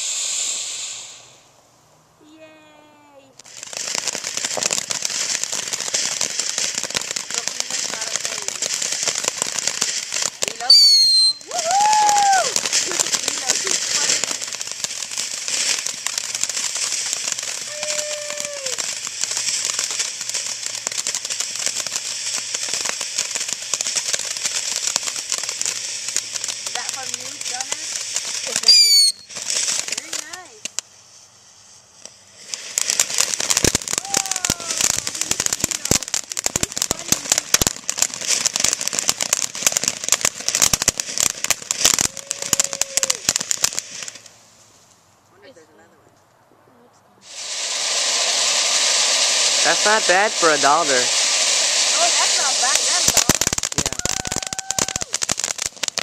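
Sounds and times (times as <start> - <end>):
firework fountain hissing and crackling: 0.0 - 46.5, 47.2 - 56.0
high whistle: 10.7 - 12.5, 28.7 - 29.3.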